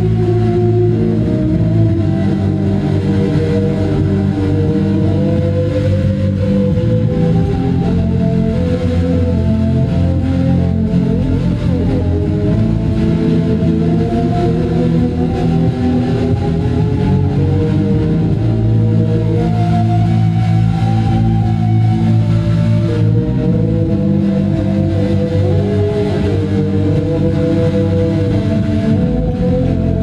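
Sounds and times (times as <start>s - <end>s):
bowed violin drone: 0.0s - 30.0s
live band music: 0.0s - 30.0s.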